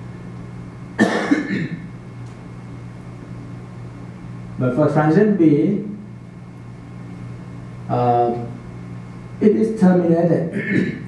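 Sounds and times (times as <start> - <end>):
low room hum: 0.0 - 11.0
harsh cough: 1.0 - 1.9, 10.5 - 11.0.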